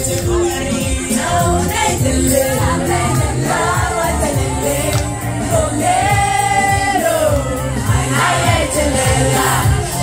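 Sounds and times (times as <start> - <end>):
backing track music: 0.0 - 10.0.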